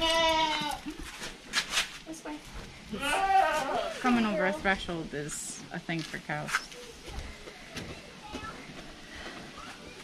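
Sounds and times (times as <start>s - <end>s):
farm animal bleating: 0.0s - 1.0s, 2.9s - 4.7s
brief scuffing noises: 1.1s - 2.0s.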